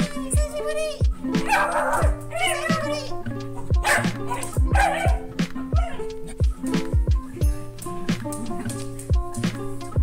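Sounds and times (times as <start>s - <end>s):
dog vocalizing excitedly: 1.4s - 6.7s
music with heavy beat: 3.7s - 10.0s.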